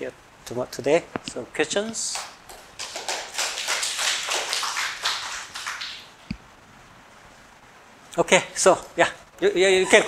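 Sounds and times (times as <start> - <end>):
audience applauding: 2.1 - 6.2.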